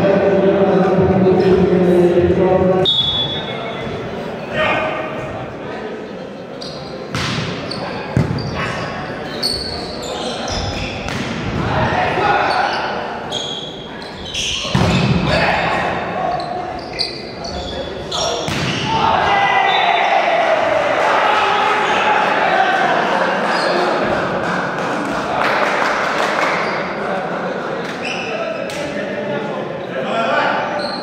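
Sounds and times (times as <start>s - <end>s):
volleyball being hit: 7.1s - 8.5s, 18.4s - 18.9s
people shouting: 18.9s - 23.3s.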